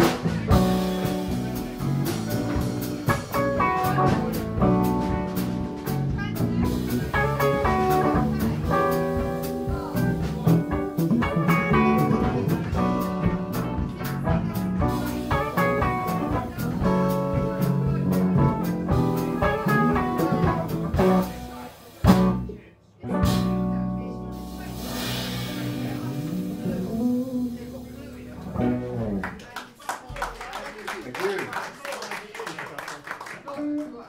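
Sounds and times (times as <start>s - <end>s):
bent guitar notes: 0.0s - 21.5s, 22.1s - 29.4s
live blues band playing: 0.0s - 29.6s, 33.6s - 33.9s.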